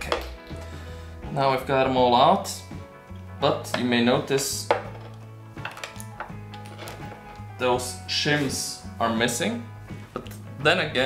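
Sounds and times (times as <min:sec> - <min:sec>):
soft background music: 0:00.0 - 0:11.0.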